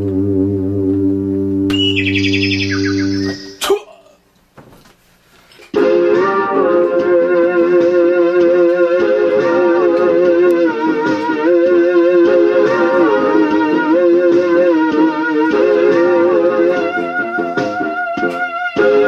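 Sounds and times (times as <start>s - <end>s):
low synth drone: 0.0s - 3.6s
synthesizer wobbling sustained notes: 0.0s - 3.6s.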